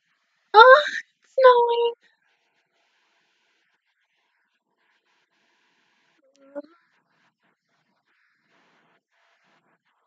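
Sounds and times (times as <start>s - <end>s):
woman's high-pitched wordless cries: 0.6s - 1.9s.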